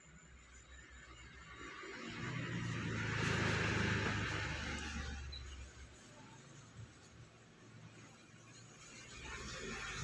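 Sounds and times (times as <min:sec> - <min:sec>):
road noise: 0:00.0 - 0:10.0
vehicle engine hum passing by: 0:00.1 - 0:07.0.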